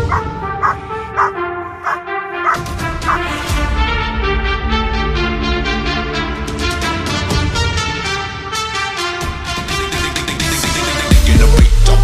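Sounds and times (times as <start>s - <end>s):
dog barking: 0.0s - 3.3s
background music: 0.0s - 12.0s.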